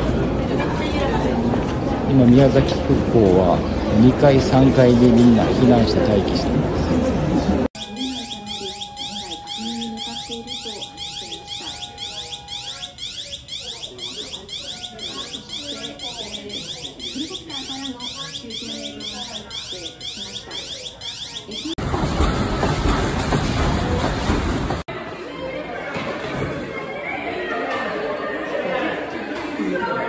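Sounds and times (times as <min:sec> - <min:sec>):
faint voices: 0:00.0 - 0:30.0
steady tone: 0:07.8 - 0:17.8
electronic sweeping warning alarm: 0:07.8 - 0:21.8.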